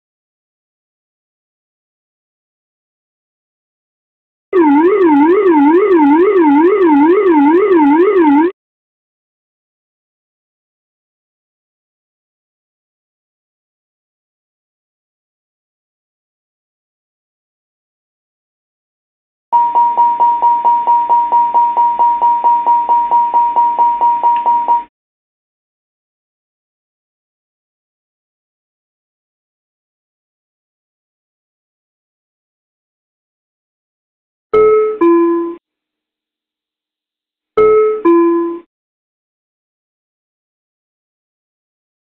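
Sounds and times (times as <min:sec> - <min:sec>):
repeating cockpit warning chime: 0:04.6 - 0:08.5
two-tone cockpit chime: 0:04.6 - 0:08.5, 0:19.6 - 0:24.9, 0:34.6 - 0:35.6, 0:37.6 - 0:38.7.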